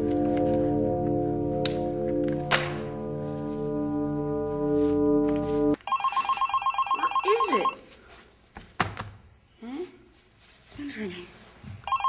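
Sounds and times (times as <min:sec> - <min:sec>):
cell phone ringing trill: 0:05.7 - 0:07.8.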